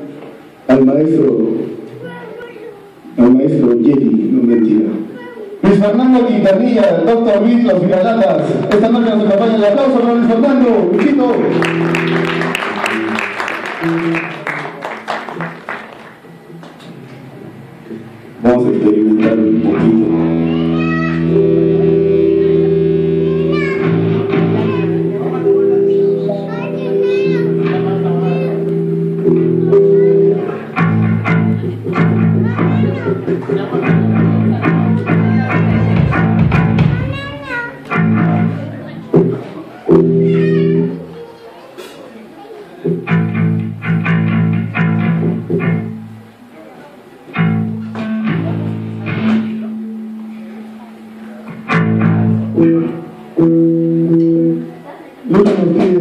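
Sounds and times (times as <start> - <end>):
audience applause: 10.8 - 16.9
electric guitar held notes: 11.3 - 14.7, 19.1 - 41.0, 42.9 - 46.5, 47.3 - 54.9
bass guitar: 18.1 - 41.0, 42.9 - 46.3, 47.3 - 54.7.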